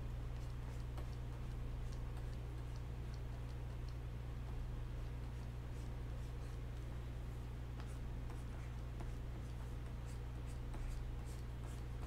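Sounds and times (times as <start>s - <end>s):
steady low hum: 0.0s - 12.0s
stylus scratching on tablet: 0.3s - 3.9s, 4.9s - 6.9s, 7.8s - 12.0s.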